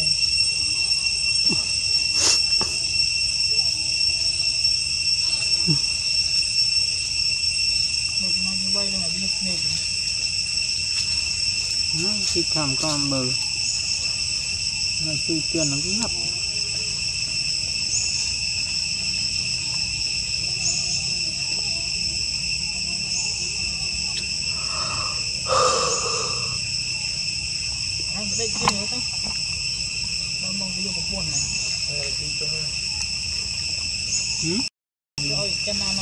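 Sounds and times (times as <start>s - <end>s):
insects droning: 0.0s - 36.0s
faint chirp: 16.8s - 27.5s.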